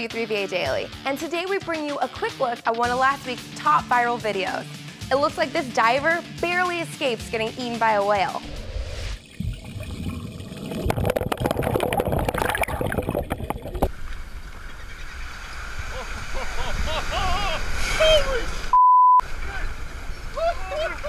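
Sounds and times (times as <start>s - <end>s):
water rushing underwater: 8.4s - 14.5s
water and wind noise: 8.4s - 21.0s
excited voices: 17.1s - 18.6s, 20.3s - 21.0s
censor beep: 18.7s - 19.2s.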